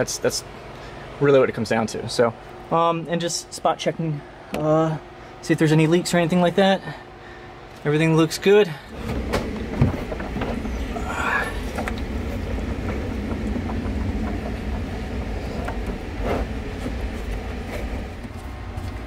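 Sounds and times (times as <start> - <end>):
steady low rumble: 7.9 - 19.0
plastic panel knocks and rattles: 9.0 - 10.8.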